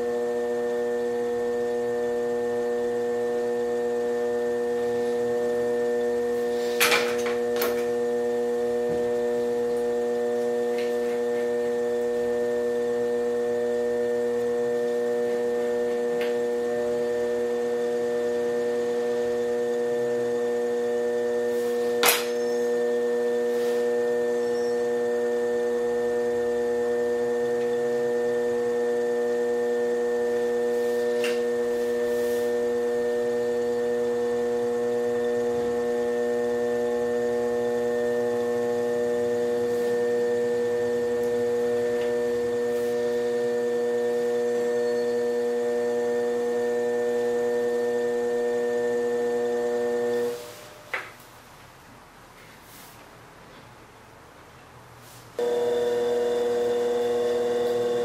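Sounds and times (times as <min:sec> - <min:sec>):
potter's wheel motor hum: 0:00.0 - 0:51.0, 0:55.4 - 0:58.0.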